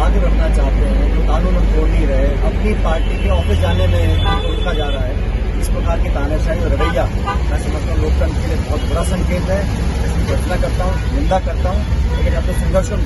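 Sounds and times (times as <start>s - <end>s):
bus engine rumble: 0.0s - 13.0s
man talking: 0.0s - 13.0s.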